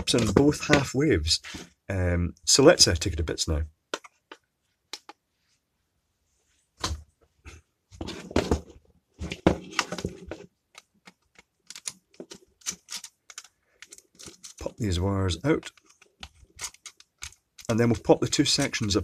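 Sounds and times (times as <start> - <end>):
plastic clicks and clatter: 8.4 - 14.8, 15.4 - 18.8.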